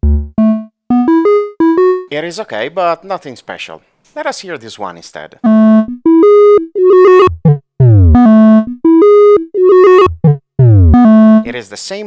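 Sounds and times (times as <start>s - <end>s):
synthesizer melody: 0.0s - 2.1s, 5.4s - 11.5s.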